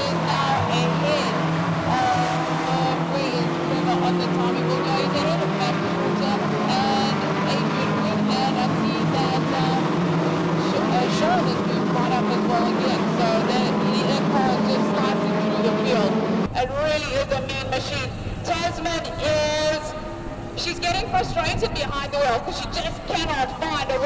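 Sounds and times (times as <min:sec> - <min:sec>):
race car engines revving: 0:00.0 - 0:24.0.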